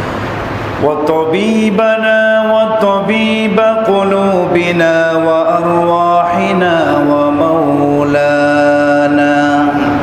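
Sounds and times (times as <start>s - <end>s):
man chanting in long held notes: 0.8s - 10.0s.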